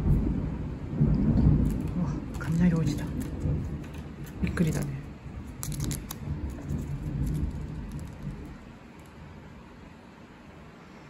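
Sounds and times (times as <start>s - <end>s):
thunder rumbling: 0.0s - 10.2s.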